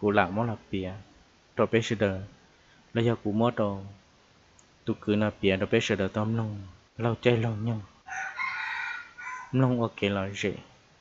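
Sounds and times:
rooster crowing: 8.0 - 9.6.

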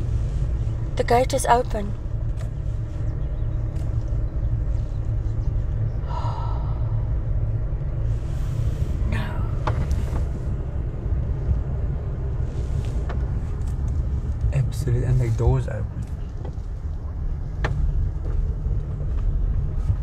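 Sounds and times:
car driving on road: 0.0 - 20.0.

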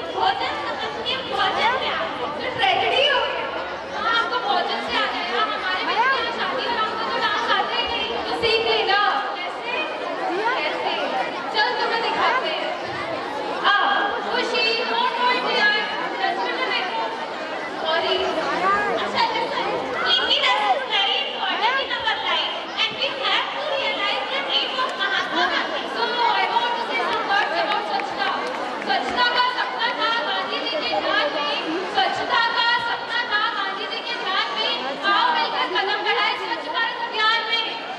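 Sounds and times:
crowd chatter: 0.0 - 37.9.

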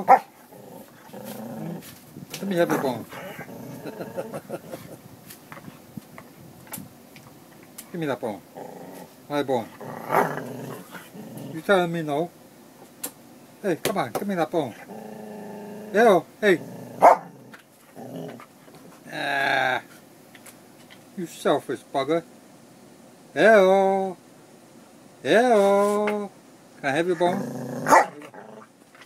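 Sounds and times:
dog barking: 0.0 - 0.3, 17.0 - 17.3, 27.8 - 28.2
dog growling: 0.0 - 5.0, 8.4 - 11.8, 14.6 - 19.7, 27.1 - 28.8.

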